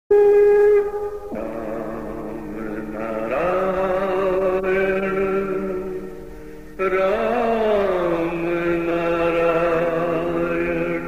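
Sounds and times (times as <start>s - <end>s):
devotional chanting: 0.1s - 11.0s.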